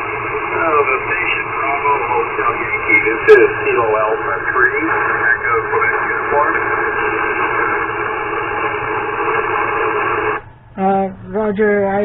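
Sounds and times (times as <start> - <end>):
radio band static: 0.0 - 10.4
faint voice over radio: 0.5 - 7.5.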